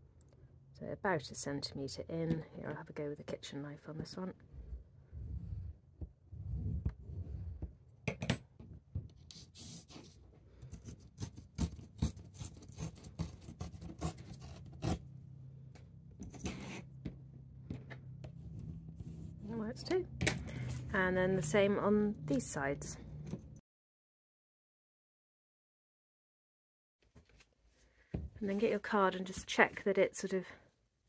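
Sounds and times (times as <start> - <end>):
paper tearing: 10.8 - 15.0.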